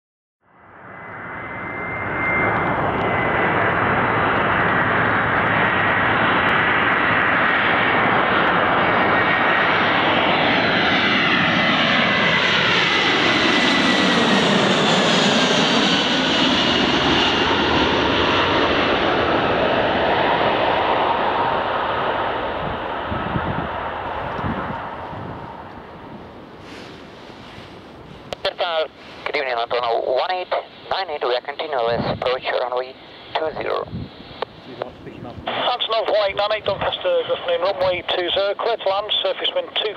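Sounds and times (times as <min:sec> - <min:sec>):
high engine whine: 0:00.5 - 0:39.9
jet engine roar: 0:00.5 - 0:39.9.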